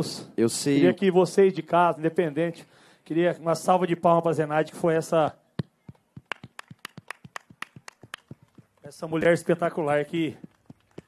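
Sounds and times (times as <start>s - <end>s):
hands clapping: 6.2s - 9.5s.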